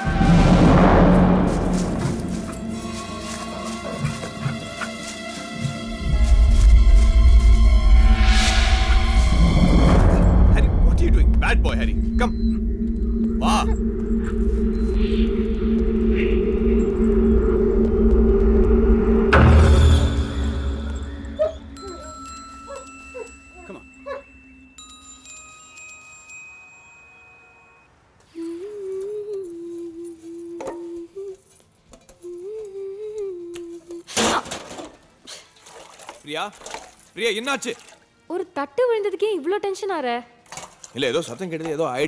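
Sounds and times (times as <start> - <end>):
sudden hit: 0.0 - 2.7, 8.0 - 21.9
loud low drone: 0.0 - 4.6, 5.8 - 22.4
soft wavering melody: 1.7 - 31.6
chime-like ringing tones: 9.9 - 18.1, 18.7 - 28.0.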